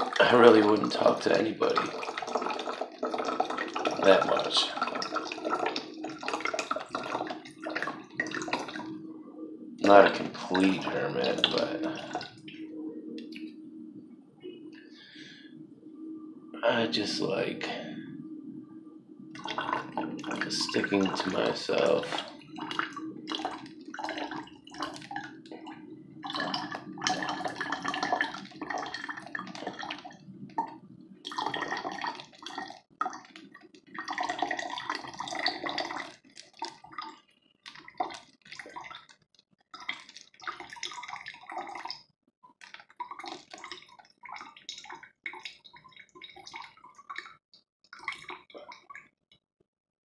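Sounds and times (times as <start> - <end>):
water pouring into plastic bottle: 0.0 - 9.0, 9.8 - 12.6, 19.3 - 49.1.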